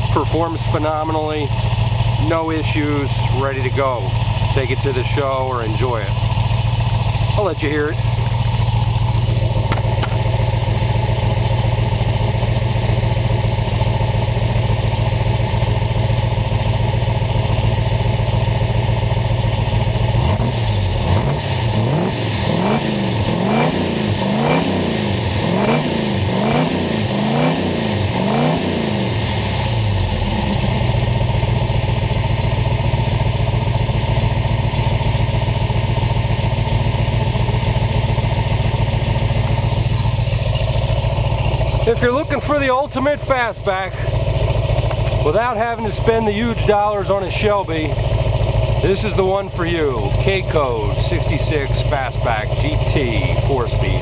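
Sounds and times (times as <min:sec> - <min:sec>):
car engine idling and revving: 0:00.0 - 0:54.0.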